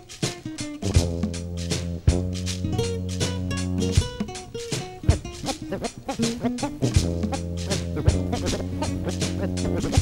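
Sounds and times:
drum hit: 0.8 - 5.5.

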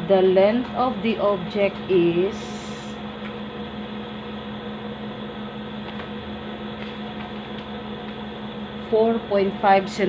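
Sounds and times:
low room hum with hiss: 0.0 - 10.0.

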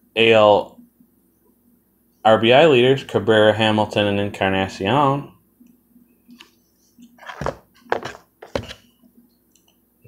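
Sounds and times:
plastic card holders knocking and scraping: 7.2 - 8.8.

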